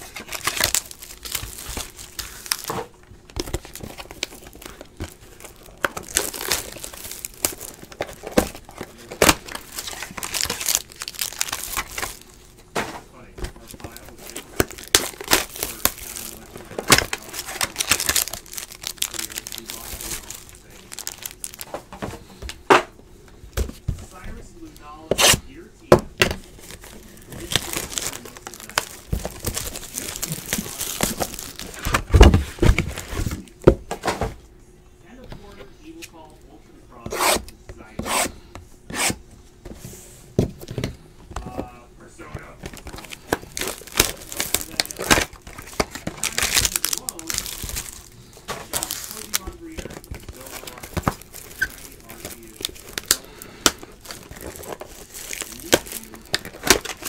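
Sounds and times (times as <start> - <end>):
cardboard tearing: 0.0 - 2.8, 3.4 - 12.2, 13.6 - 21.7, 26.6 - 33.5, 37.1 - 39.2, 42.7 - 57.0
packs crinkling: 0.0 - 12.6, 13.2 - 22.6, 26.2 - 33.6, 40.6 - 57.0.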